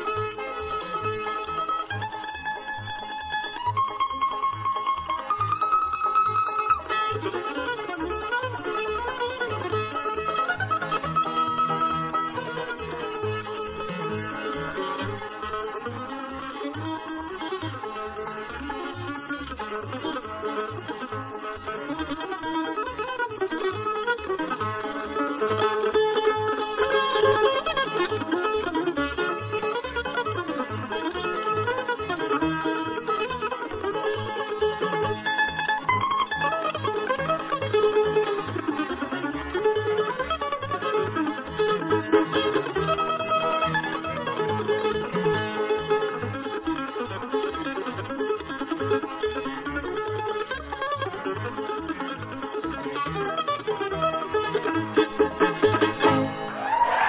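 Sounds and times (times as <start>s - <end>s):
upright bass plucking: 0.0s - 56.6s
bluegrass band playing: 0.0s - 57.0s.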